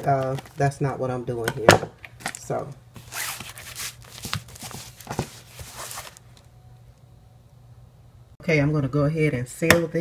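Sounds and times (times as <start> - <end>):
plastic bag rustling: 2.2 - 6.3.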